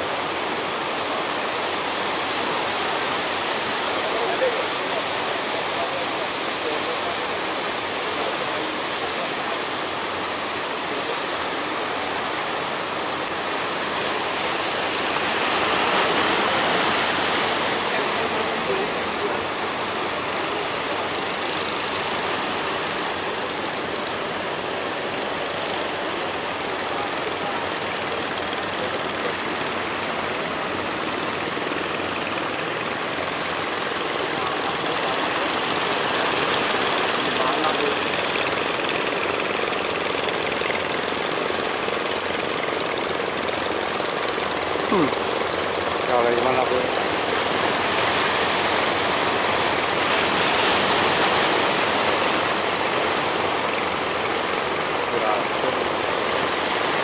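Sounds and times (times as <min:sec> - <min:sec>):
boat engine running: 0:00.0 - 0:57.0
surf and rushing water: 0:00.0 - 0:57.0.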